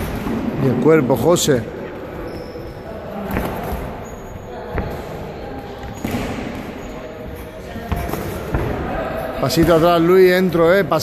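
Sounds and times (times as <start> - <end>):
low gym background: 0.0 - 11.0.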